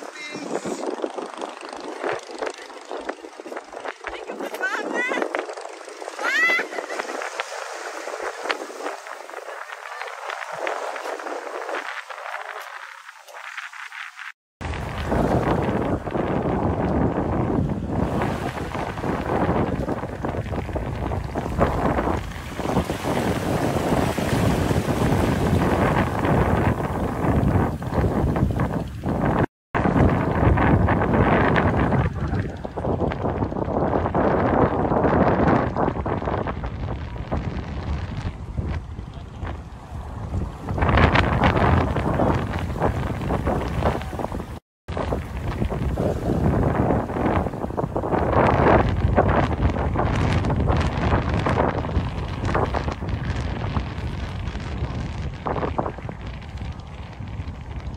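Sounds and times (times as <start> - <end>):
wind buffeting microphone: 0.0 - 57.9.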